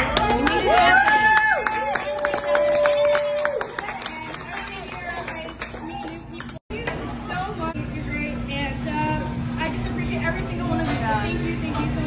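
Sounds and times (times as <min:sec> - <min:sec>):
audience clapping: 0:00.0 - 0:06.6.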